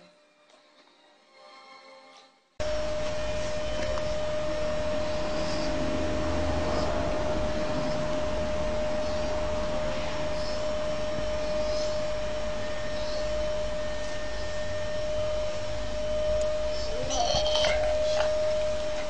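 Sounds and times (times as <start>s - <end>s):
mechanical whir with high hum: 2.6s - 19.0s
faint high chirps: 8.8s - 19.0s.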